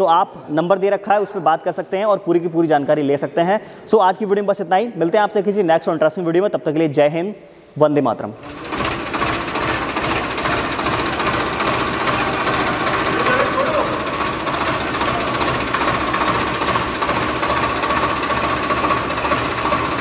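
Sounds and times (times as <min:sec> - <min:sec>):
machine clattering: 0:08.4 - 0:20.0.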